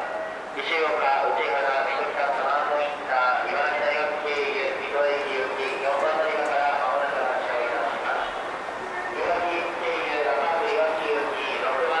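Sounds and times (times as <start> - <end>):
public address announcement: 0.0 - 12.0.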